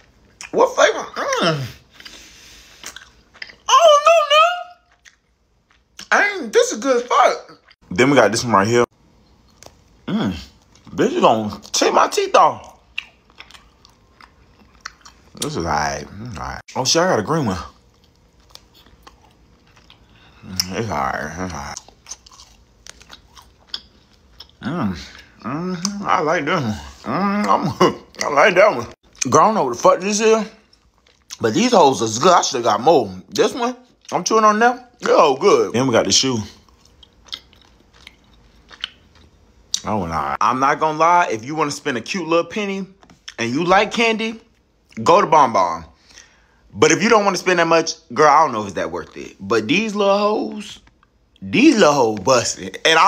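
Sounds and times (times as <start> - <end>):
person chewing gummy candy: 1.9 - 3.7, 4.7 - 6.1, 12.6 - 16.6, 17.6 - 26.1, 30.6 - 31.4, 36.5 - 39.9.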